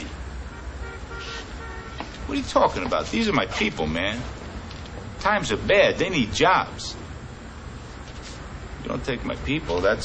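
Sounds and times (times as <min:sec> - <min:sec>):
faint background noise: 0:00.0 - 0:10.0
short horn-like toots: 0:00.5 - 0:02.0.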